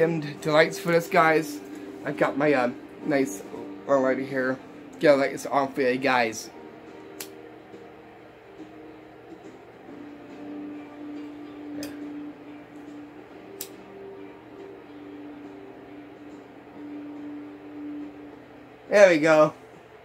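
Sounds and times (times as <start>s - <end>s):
soft background music: 0.0s - 20.0s
lighter clicks: 7.1s - 7.4s, 11.8s - 12.1s, 13.5s - 13.8s.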